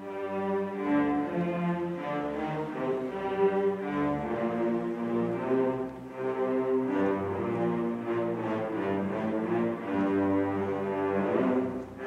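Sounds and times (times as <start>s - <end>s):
string orchestra playing held notes: 0.0s - 12.0s.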